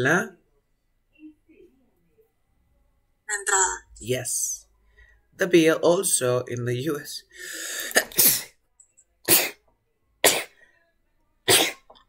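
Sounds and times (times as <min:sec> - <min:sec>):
person coughing: 0:11.5 - 0:12.0.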